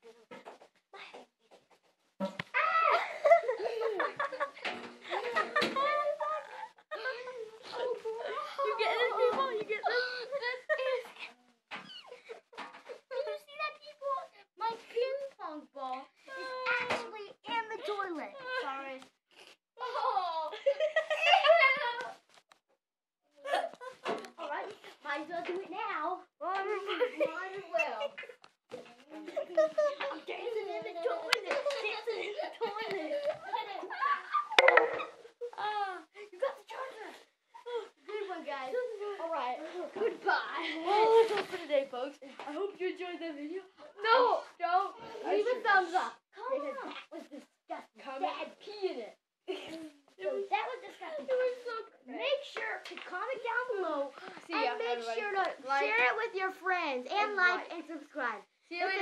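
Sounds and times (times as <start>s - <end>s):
children talking: 0.0s - 19.2s, 19.8s - 22.2s, 23.4s - 59.0s.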